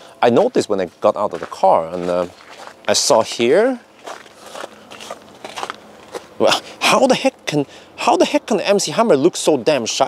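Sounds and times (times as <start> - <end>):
footsteps crunching on snow: 0.2 - 6.7.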